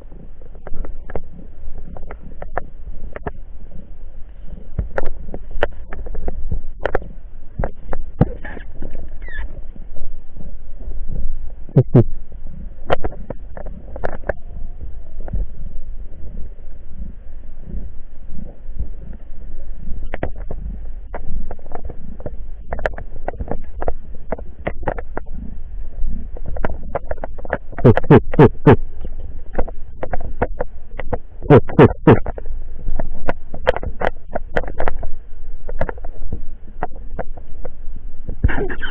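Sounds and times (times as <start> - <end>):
underwater low rumble: 0.0 - 38.9
sharp clicks and knocks: 4.7 - 9.2, 12.8 - 14.4, 20.0 - 25.4, 26.3 - 36.2.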